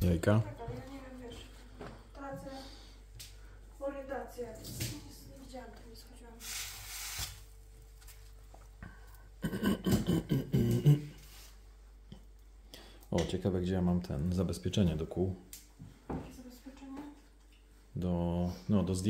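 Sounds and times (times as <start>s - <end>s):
short hiss: 6.4s - 7.4s.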